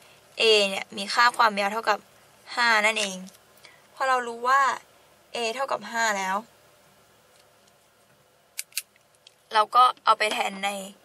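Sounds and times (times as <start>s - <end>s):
woman speaking: 0.4s - 3.4s, 4.0s - 6.5s, 9.5s - 11.0s.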